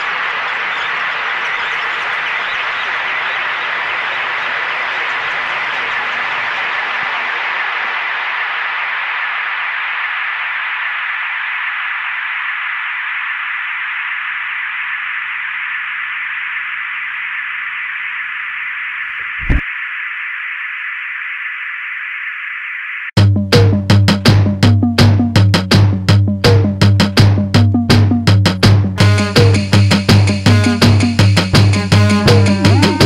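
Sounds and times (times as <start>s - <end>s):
static-like hiss: 0.0s - 23.1s
low thump: 19.2s - 19.6s
synth music: 31.8s - 33.0s.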